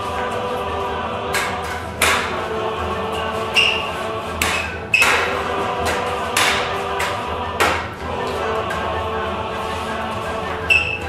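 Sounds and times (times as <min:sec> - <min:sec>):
choir background music: 0:00.0 - 0:11.0.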